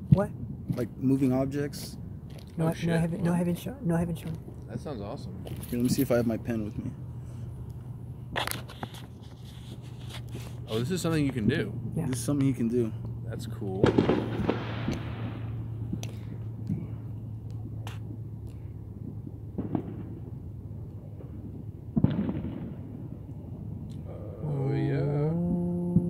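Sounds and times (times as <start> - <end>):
fireworks banging and rumbling: 0.0 - 1.2, 7.8 - 23.9
faint firework pops: 13.8 - 16.9, 19.6 - 20.2, 21.2 - 23.2.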